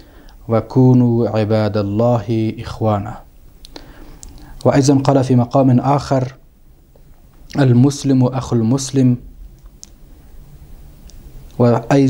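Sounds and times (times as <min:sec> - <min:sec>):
man speaking: 0:00.4 - 0:03.3, 0:04.6 - 0:06.5, 0:07.5 - 0:09.3, 0:11.6 - 0:12.0
faint mouth click: 0:03.6 - 0:04.6, 0:09.6 - 0:10.0.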